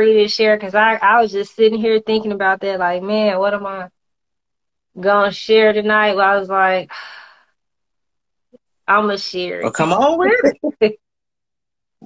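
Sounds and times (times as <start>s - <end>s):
woman speaking: 0.0s - 3.9s, 5.0s - 6.9s, 8.9s - 11.0s.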